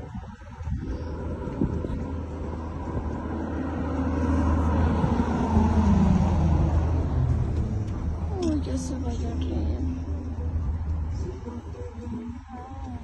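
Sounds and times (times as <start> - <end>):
car rolling along road: 0.0 - 13.0.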